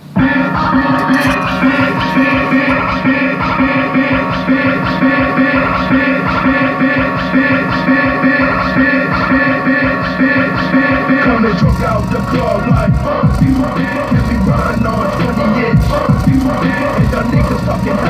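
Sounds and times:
music through car speaker: 0.0s - 18.0s.

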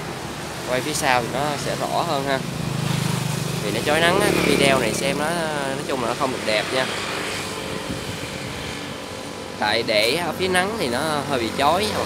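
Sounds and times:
road traffic noise: 0.0s - 12.0s.

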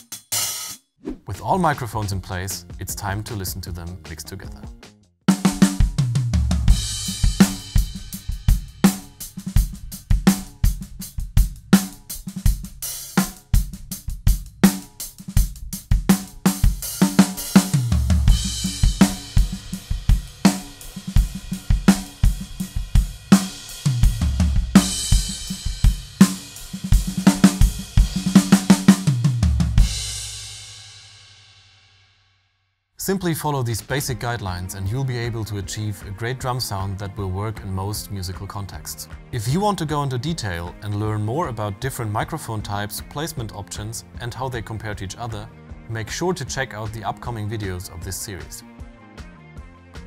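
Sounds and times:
drum kit groove: 0.0s - 31.7s, 33.0s - 50.0s
cymbal crash: 6.7s - 10.6s, 17.4s - 28.7s.

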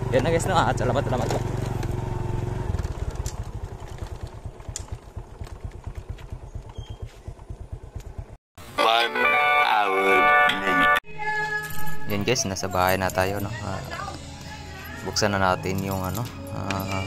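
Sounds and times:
small motorcycle engine running: 0.0s - 8.4s.

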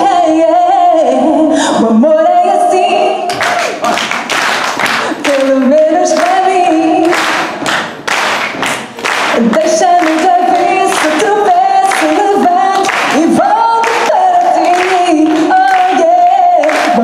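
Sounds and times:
woman singing into a microphone: 0.0s - 3.5s, 4.9s - 7.6s, 9.2s - 17.0s
rhythmic clapping: 3.3s - 17.0s.

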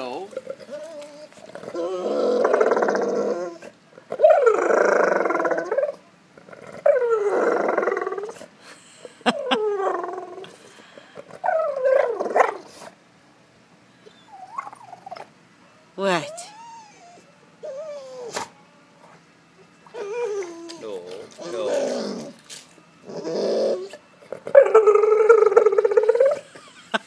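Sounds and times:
dog whining and groaning: 0.0s - 8.5s, 9.2s - 13.0s, 14.0s - 15.3s, 16.0s - 18.6s, 19.8s - 26.6s.

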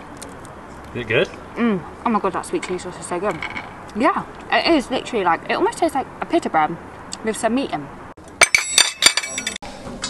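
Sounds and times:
glassware clinking: 8.4s - 9.6s.

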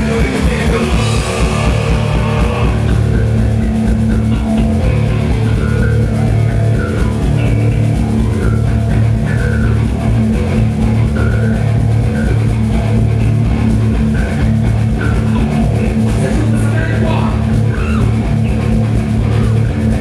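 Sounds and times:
bass guitar: 0.0s - 20.0s
drum kit: 0.0s - 20.0s
electric guitar: 0.0s - 20.0s.

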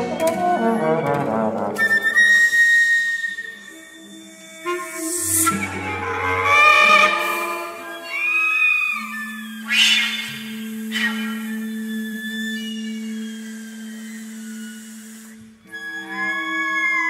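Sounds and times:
chamber ensemble playing: 4.0s - 17.0s.

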